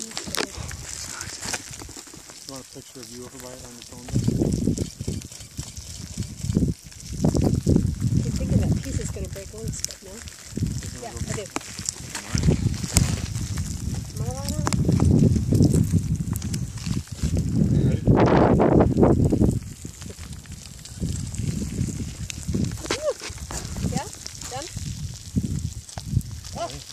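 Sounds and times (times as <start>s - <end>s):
low rumbling: 0.0s - 26.9s.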